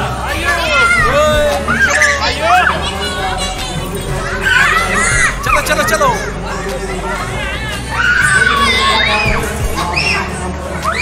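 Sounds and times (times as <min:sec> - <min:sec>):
children shouting and squealing: 0:00.0 - 0:11.0
crowd noise: 0:00.0 - 0:11.0.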